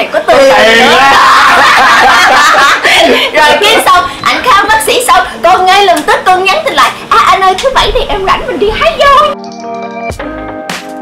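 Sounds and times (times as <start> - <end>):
group laughing loudly: 0.3 - 4.0.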